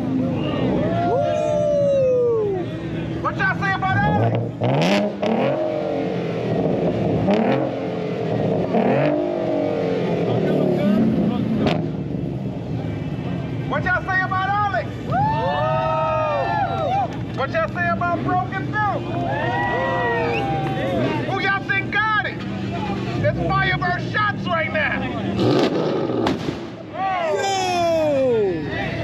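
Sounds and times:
car engine revving: 2.9s - 15.1s, 20.3s - 26.9s
exhaust bangs: 3.1s - 15.4s, 20.3s - 27.0s.

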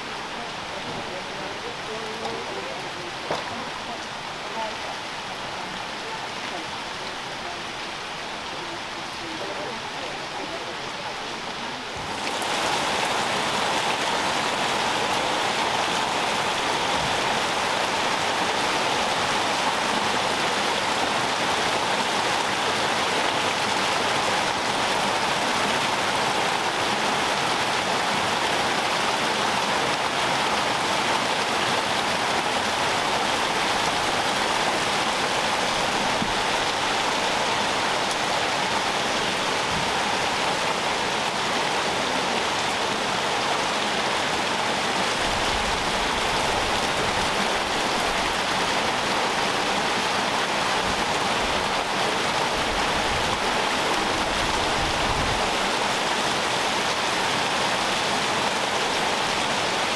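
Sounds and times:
running water rushing: 0.0s - 59.9s.

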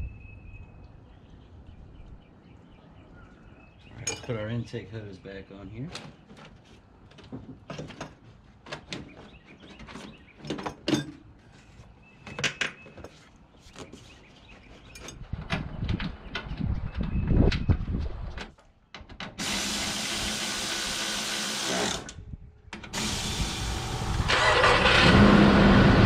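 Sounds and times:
low rumbling handling noise: 5.8s - 19.2s
steady mechanical drone: 22.8s - 26.0s.

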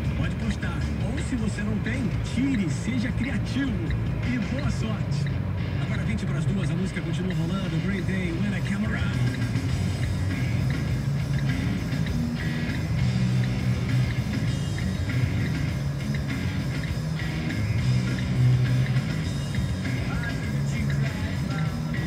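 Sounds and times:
rock song from car radio: 0.0s - 22.0s.

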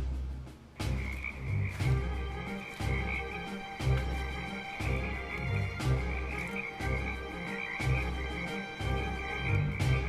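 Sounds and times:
background music with bass notes: 0.0s - 10.0s
frog chorus calling: 0.8s - 10.0s.

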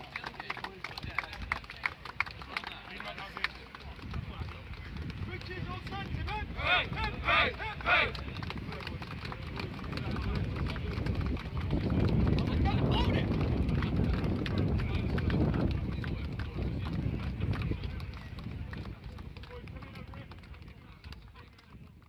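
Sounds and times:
men chattering: 0.0s - 21.5s.

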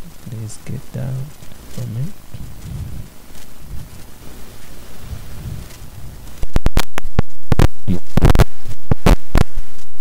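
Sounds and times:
low uneven rumbling: 0.0s - 9.3s.

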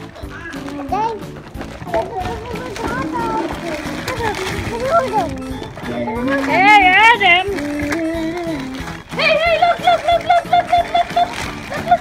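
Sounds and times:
overlapping voices: 0.0s - 12.0s
plastic packaging crinkling: 0.0s - 12.0s.

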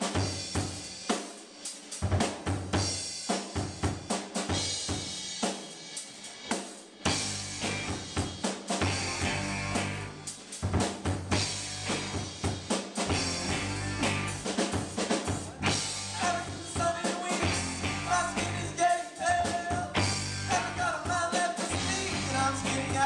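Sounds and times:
drum kit beat: 0.0s - 23.0s
live rock band playing: 7.0s - 23.0s
electric bass: 7.1s - 8.2s, 8.8s - 10.3s, 11.2s - 12.4s, 13.1s - 14.6s, 15.5s - 16.6s, 17.4s - 18.8s, 19.9s - 21.0s, 21.7s - 23.0s.

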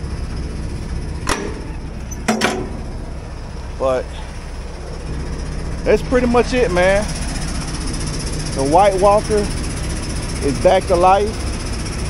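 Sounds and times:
diesel truck engine idling: 0.0s - 12.0s
sharp knocks: 1.2s - 3.1s.

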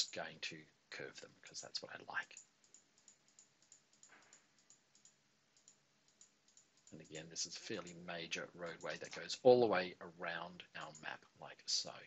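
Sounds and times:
computer mouse clicks: 2.3s - 8.0s.

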